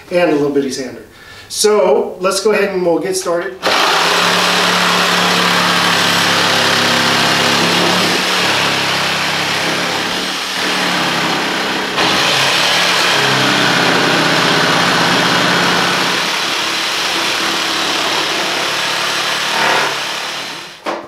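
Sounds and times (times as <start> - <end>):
reciprocating saw cutting wood: 3.6 - 20.8.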